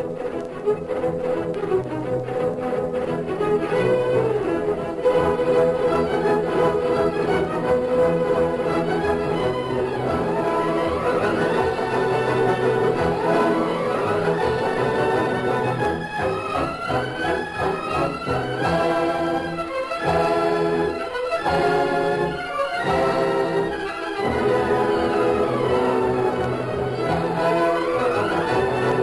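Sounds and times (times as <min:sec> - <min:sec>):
orchestral music with brass and strings: 0:00.0 - 0:29.0.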